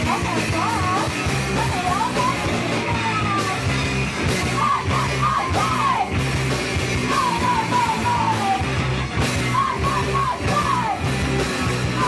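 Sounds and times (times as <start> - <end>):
woman singing: 0.0 - 3.8, 4.4 - 6.2, 7.0 - 8.7, 9.5 - 11.1
punk band playing: 0.0 - 12.0.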